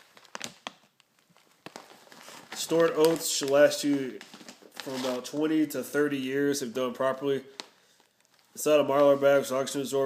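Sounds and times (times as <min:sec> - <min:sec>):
mylar bag crinkling: 0:00.0 - 0:06.0, 0:07.5 - 0:09.8.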